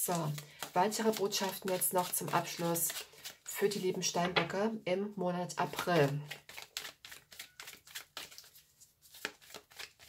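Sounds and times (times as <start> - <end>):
cards being shuffled: 0.2 - 3.9, 5.7 - 10.0.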